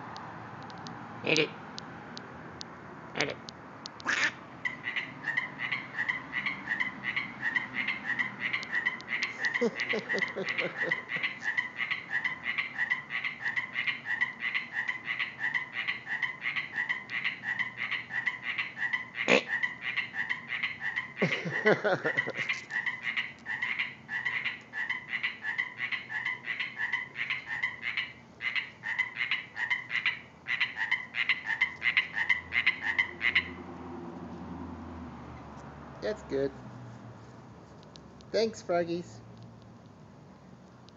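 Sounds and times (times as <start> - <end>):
frogs croaking rapidly: 3.0 - 34.1
lower-pitched frog croaks: 3.1 - 33.9.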